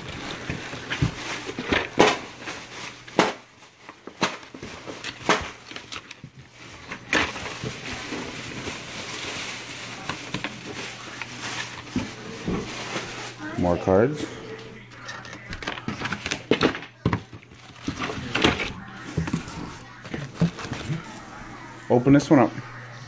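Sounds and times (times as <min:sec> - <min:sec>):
packaging rustling: 0:00.0 - 0:22.5.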